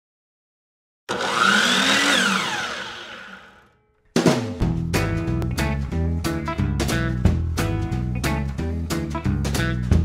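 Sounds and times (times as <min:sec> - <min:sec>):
power saw whirring: 0:01.1 - 0:03.8.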